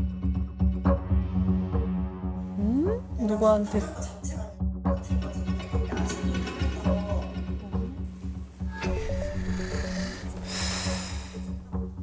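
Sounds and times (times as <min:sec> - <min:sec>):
background music with low beat: 0:00.0 - 0:12.0.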